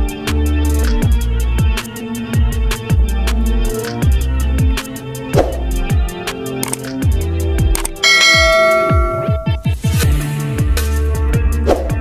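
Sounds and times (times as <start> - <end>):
bell-like notification chime: 8.0 - 9.7.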